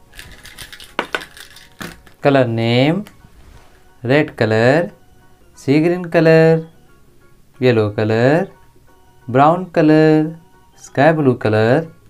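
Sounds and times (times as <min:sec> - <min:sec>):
plastic caps clattering on paper: 0:00.1 - 0:02.2.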